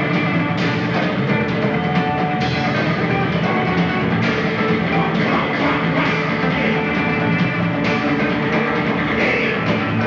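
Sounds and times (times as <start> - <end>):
drums: 0.0 - 10.0
electric bass: 0.0 - 10.0
electric guitar: 0.0 - 10.0.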